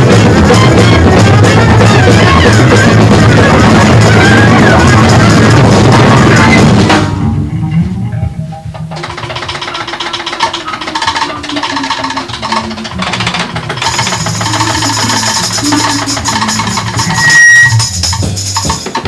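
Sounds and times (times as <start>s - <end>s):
drums with toms and cymbals: 0.0s - 19.0s
jazz-rock band instrumental: 0.0s - 19.0s.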